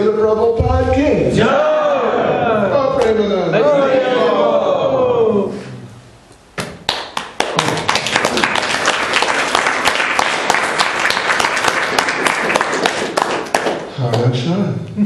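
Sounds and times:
audience applauding: 6.8 - 14.3.

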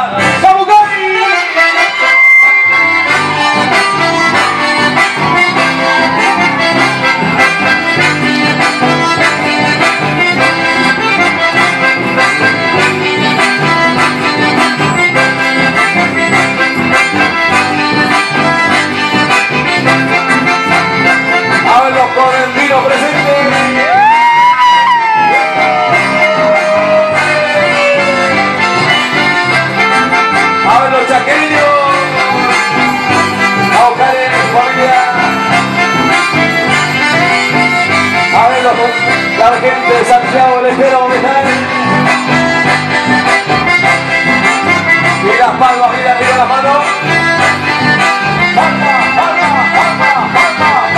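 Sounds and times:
acoustic guitar: 0.0 - 50.9
button accordions playing: 0.0 - 50.9
electric bass: 0.0 - 50.9
person crying out high: 23.8 - 28.6.

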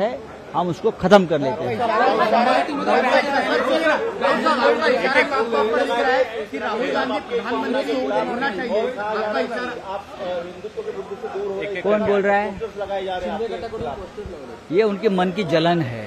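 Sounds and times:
overlapping voices talking: 0.0 - 16.0.

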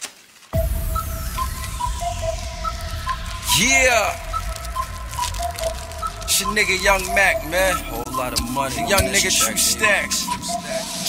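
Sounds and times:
falling whoosh sweep: 0.6 - 8.4
high synth melody: 0.6 - 11.0
hip-hop beat with heavy bass: 0.6 - 11.0.

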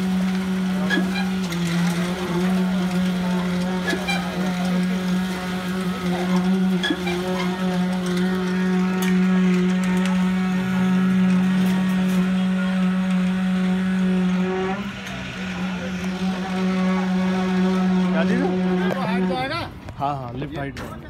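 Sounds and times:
concrete vibrator humming: 0.0 - 19.9.

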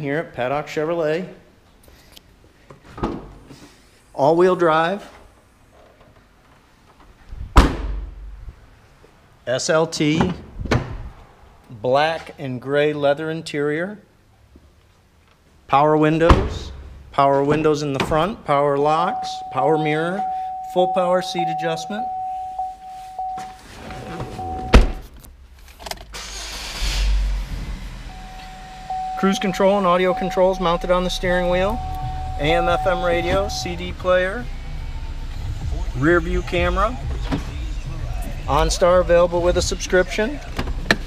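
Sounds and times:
car engine starting: 22.6 - 41.0
car door shutting: 23.0 - 34.1, 37.1 - 37.7.

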